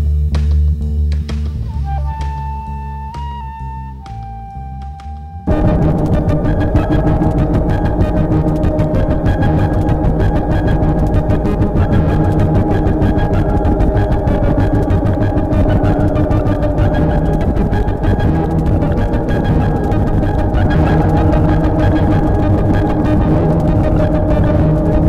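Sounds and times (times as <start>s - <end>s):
sustained synth tones: 1.7s - 25.0s
fast electronic pulse: 5.5s - 25.0s.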